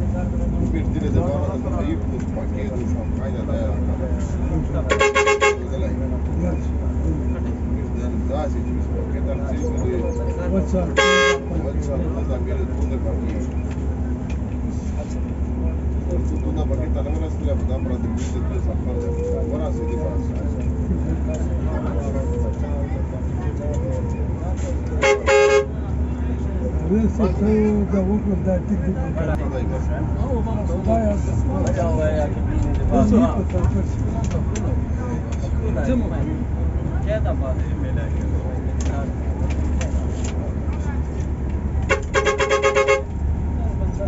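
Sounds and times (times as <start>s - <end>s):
coach engine rumble inside cabin: 0.0s - 44.0s
vehicle horn toot and blast: 4.9s - 5.7s, 11.0s - 11.5s, 25.0s - 25.7s, 41.9s - 43.1s.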